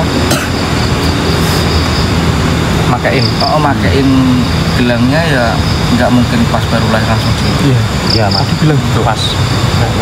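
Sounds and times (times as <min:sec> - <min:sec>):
thin high-pitched drone: 0:00.0 - 0:10.0.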